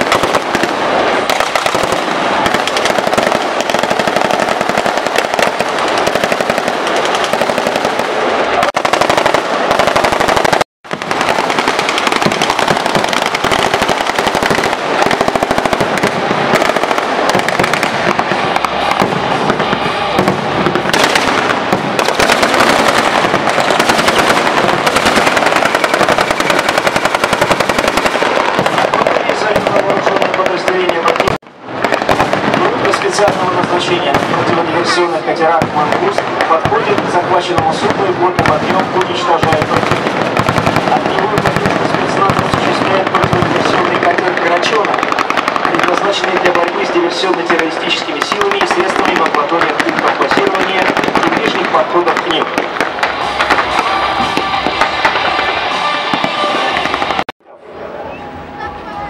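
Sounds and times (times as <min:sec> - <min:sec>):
rapid automatic gunfire: 0:00.0 - 0:34.6, 0:35.6 - 0:52.4.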